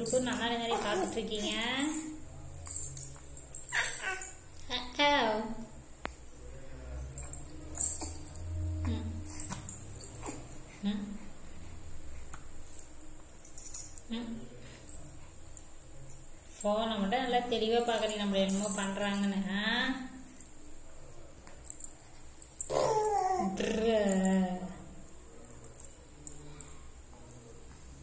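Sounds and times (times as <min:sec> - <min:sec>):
baby cooing and squeaking: 0:00.5 - 0:01.7, 0:03.7 - 0:04.4, 0:09.3 - 0:10.6, 0:22.6 - 0:23.8
baby fussing: 0:00.6 - 0:01.7, 0:22.7 - 0:23.6.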